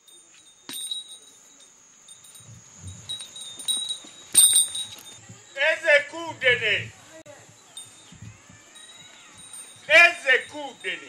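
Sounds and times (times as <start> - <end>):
high metallic chimes ringing: 0.0 - 5.5, 7.4 - 11.0.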